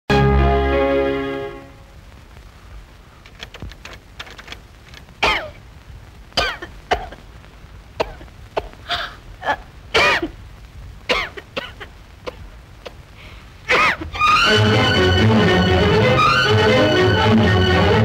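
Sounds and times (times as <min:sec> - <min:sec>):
woman coughing hoarsely: 0:08.0 - 0:10.3, 0:13.7 - 0:14.1.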